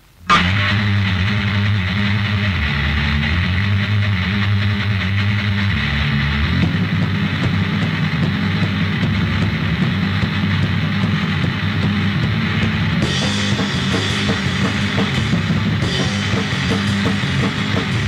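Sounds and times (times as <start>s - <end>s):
distorted guitar and bass punk song: 0.0s - 18.0s.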